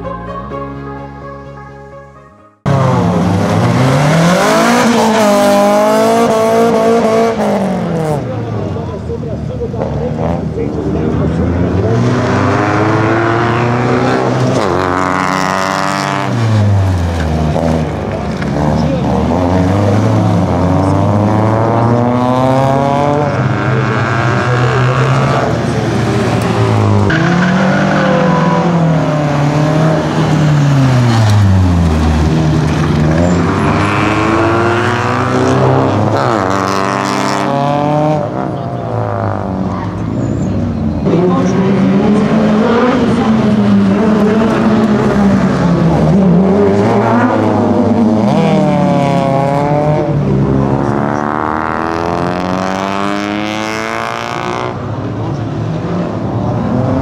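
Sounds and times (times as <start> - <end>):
rally car engine revving: 2.6 - 57.0.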